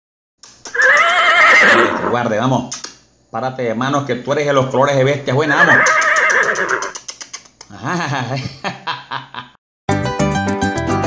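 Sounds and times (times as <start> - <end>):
horse whinnying: 0.7 - 2.2, 5.4 - 7.0.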